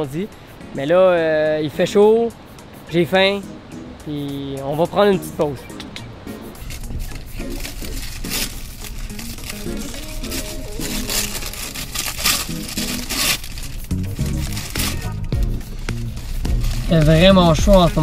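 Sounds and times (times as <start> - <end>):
background music: 0.0 - 18.0
paper bag crinkling: 6.6 - 18.0.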